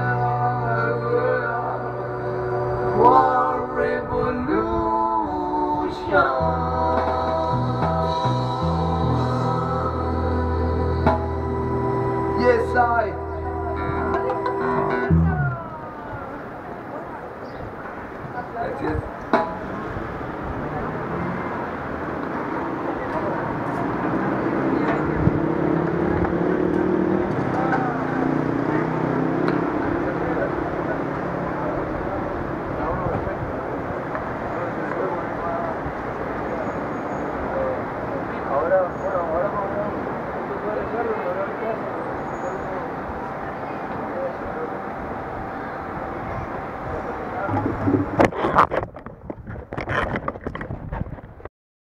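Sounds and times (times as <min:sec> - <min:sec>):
indistinct voices: 0:00.0 - 0:17.4, 0:18.4 - 0:49.1
street traffic passing: 0:00.0 - 0:51.4.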